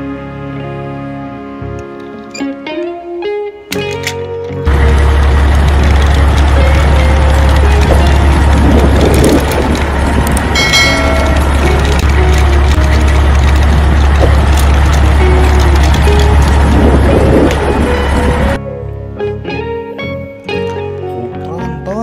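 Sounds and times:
heavy truck engine running: 3.8 - 18.6.

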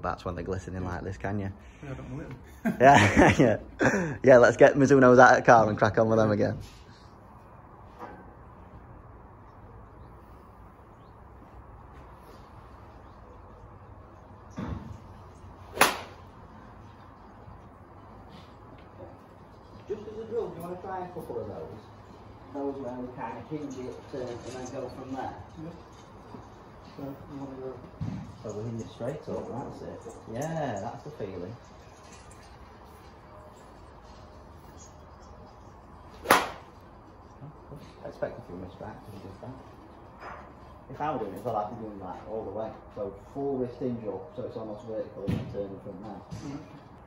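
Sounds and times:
golf club striking ball: 15.7 - 16.2, 36.2 - 36.8.

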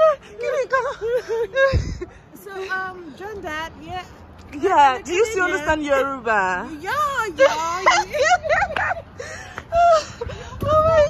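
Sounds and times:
laughter: 0.0 - 2.1, 7.4 - 10.9
woman crying out excitedly: 9.7 - 11.0.

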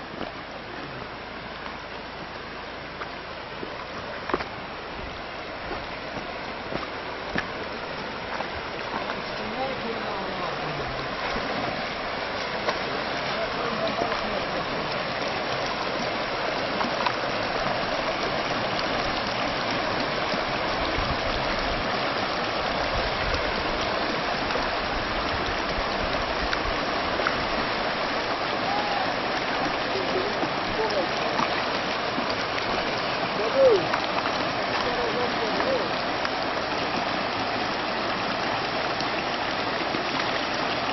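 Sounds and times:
river rushing over stones: 0.0 - 40.9.

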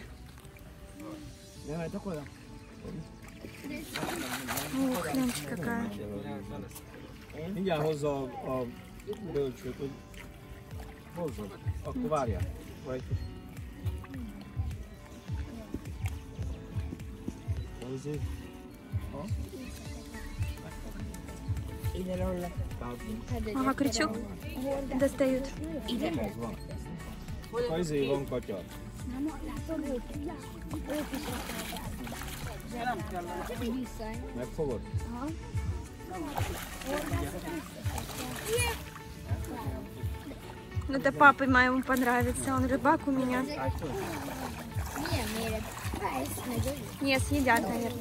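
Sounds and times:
background music: 0.0 - 48.0
water sloshing in a net: 0.0 - 48.0
fish thrashing in water: 2.8 - 5.9, 29.0 - 33.8, 36.1 - 48.0
people talking: 40.9 - 48.0.

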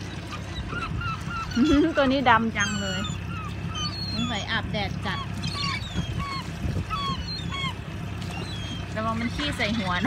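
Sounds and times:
boat motor humming: 0.0 - 10.0
gulls calling: 0.0 - 10.0.

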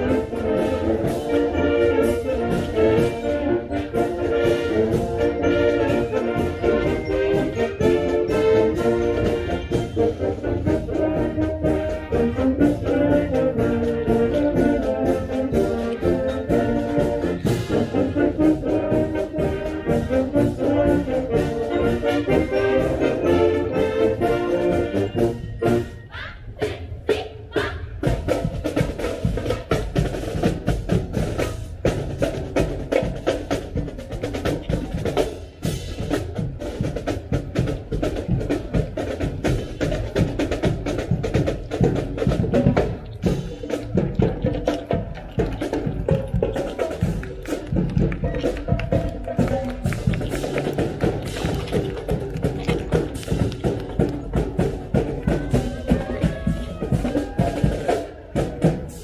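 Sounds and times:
saxophones: 0.0 - 26.8
trumpets: 0.0 - 28.1
busy drum beat: 0.0 - 59.0
marching band playing: 0.0 - 59.0.

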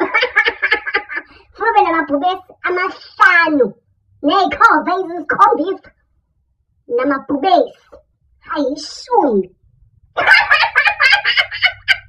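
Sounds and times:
man cackling laugh: 0.0 - 1.4, 10.2 - 12.0.

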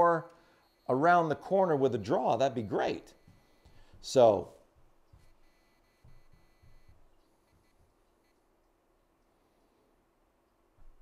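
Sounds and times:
faint high steady tone: 0.0 - 4.6, 5.2 - 9.6
soft low thumps: 3.2 - 8.0, 10.8 - 11.0.

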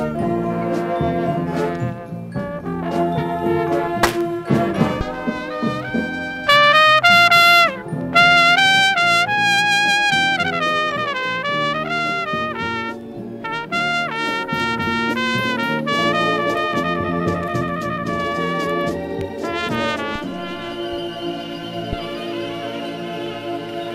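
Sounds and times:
marching band brass melody: 0.0 - 23.0.

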